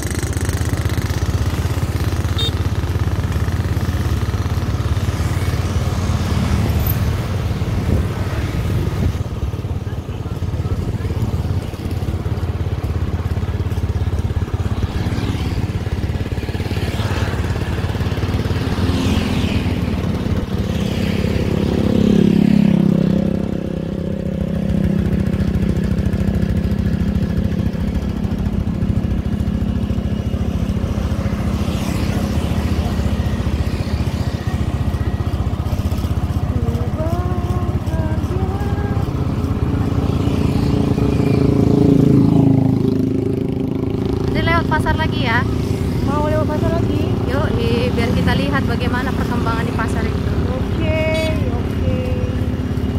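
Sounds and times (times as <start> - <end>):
motorcycle engine running: 0.0 - 52.9
motorcycle passing by: 0.0 - 52.9
road noise: 0.0 - 52.9.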